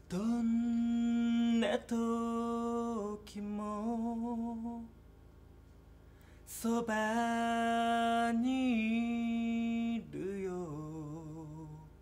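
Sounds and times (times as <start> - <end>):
man singing a low note: 0.0 - 4.9, 6.5 - 12.0.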